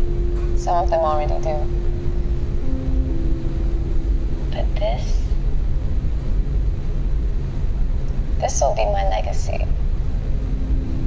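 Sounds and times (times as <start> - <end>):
loud low rumble: 0.0 - 11.0
person speaking: 4.6 - 5.3.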